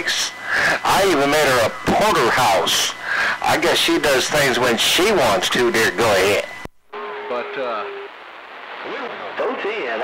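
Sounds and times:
radio receiver hiss: 0.0s - 10.0s
garbled radio voice: 7.1s - 8.1s, 8.8s - 10.0s.

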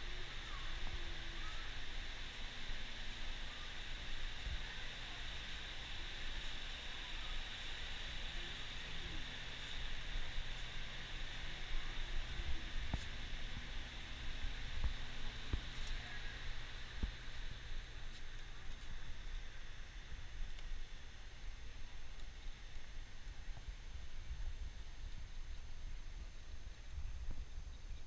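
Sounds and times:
even hiss: 0.0s - 28.0s.

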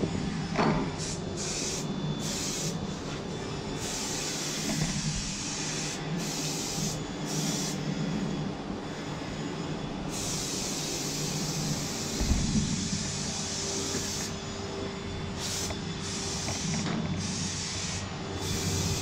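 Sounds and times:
steady low hum: 0.0s - 19.0s
aerosol spray can hissing: 1.0s - 2.8s, 3.8s - 7.8s, 10.1s - 12.8s, 13.4s - 14.4s, 15.4s - 19.0s.

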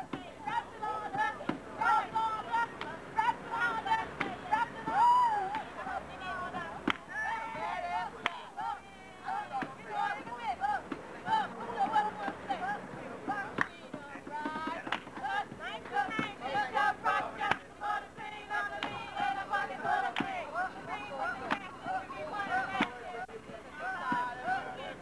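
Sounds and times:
women talking and shouting: 0.0s - 25.0s.

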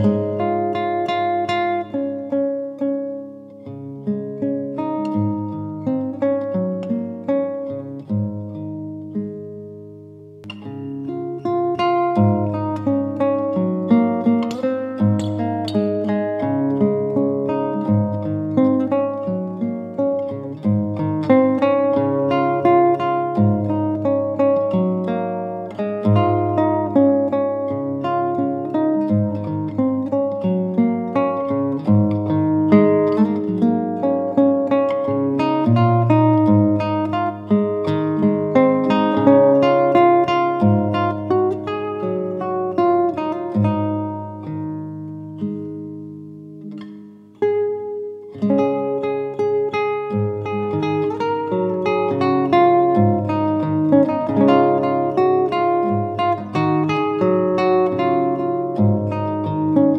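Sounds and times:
fingerstyle classical guitar: 0.0s - 59.9s.

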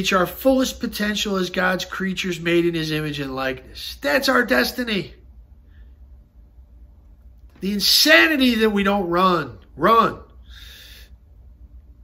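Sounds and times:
man speaking: 0.0s - 5.2s, 7.5s - 10.4s
man taking a breath: 10.4s - 11.2s.

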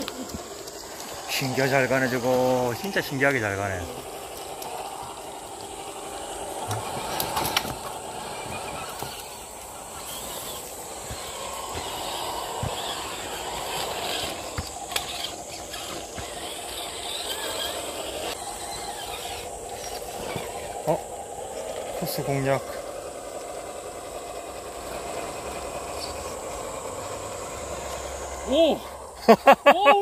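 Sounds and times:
electric motors whining: 0.0s - 30.0s.

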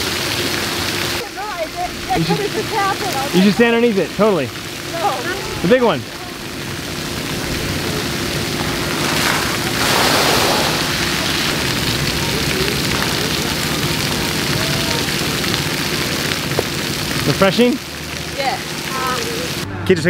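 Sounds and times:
fountain jets spraying water: 0.0s - 19.7s
water pattering on pavement: 0.0s - 19.7s
faint voices: 4.8s - 16.4s.

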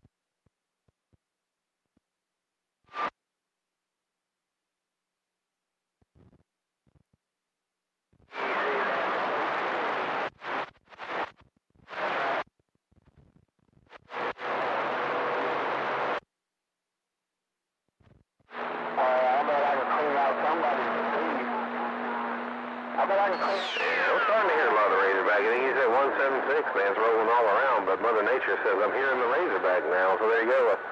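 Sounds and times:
radio static bursts: 8.3s - 12.4s, 13.9s - 16.2s, 18.5s - 30.9s
low hum: 18.5s - 25.3s
warbling voice over radio: 18.9s - 22.4s, 23.0s - 30.9s.

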